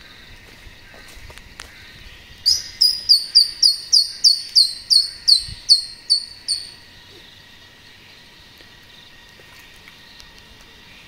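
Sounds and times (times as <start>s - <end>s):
bird whistling call: 2.5s - 6.8s.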